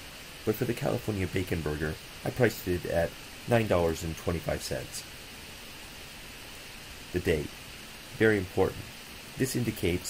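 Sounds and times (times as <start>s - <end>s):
microphone background hiss: 0.0s - 10.0s.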